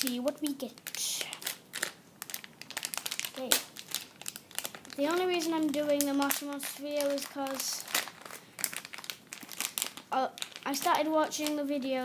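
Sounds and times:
foil wrapper crinkling: 0:00.0 - 0:12.0.

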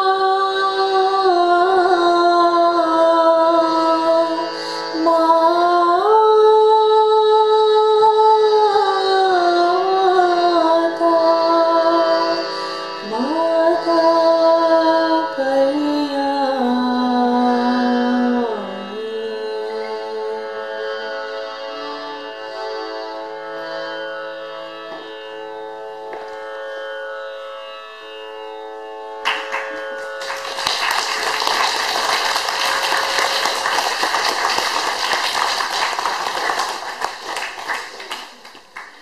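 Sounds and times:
harmonium holding notes: 0:00.0 - 0:39.0
audience applauding: 0:29.2 - 0:39.0.

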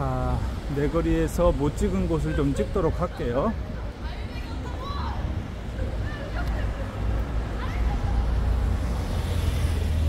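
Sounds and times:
moving car rumble: 0:03.6 - 0:10.0.

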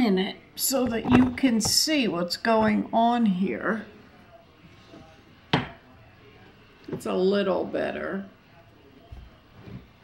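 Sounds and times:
plate knocking on tabletop: 0:05.5 - 0:05.8.

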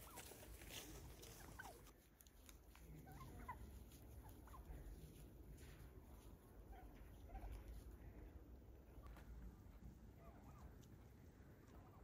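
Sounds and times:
turkeys calling: 0:00.0 - 0:01.9, 0:03.0 - 0:05.0, 0:06.7 - 0:07.8, 0:10.1 - 0:10.9.

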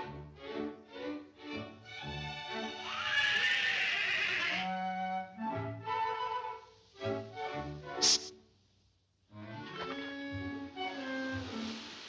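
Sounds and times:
cartoon orchestral music: 0:04.4 - 0:07.8.

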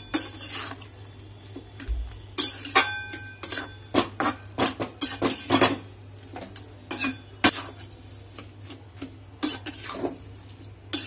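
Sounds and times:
metal spatula scraping a pan: 0:00.0 - 0:01.0, 0:02.4 - 0:05.9, 0:06.9 - 0:08.5, 0:09.4 - 0:11.0.

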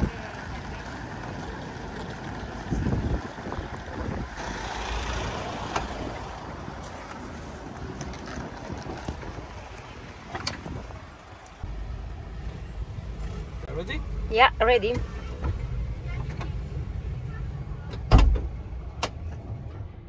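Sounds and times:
wind buffeting microphone: 0:00.0 - 0:11.4
traffic noise: 0:00.0 - 0:20.0.

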